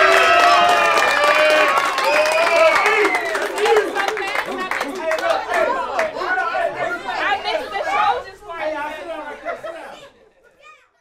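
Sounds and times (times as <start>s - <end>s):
crowd of adults and children chattering: 3.4s - 11.0s.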